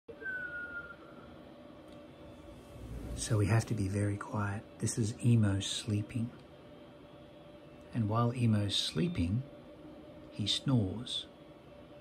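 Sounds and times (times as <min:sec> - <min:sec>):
short thin downward whistle: 0:00.1 - 0:01.3.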